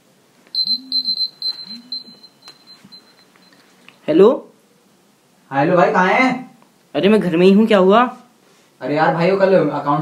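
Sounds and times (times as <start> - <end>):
mobile phone ringtone beeps: 0.6 - 3.6.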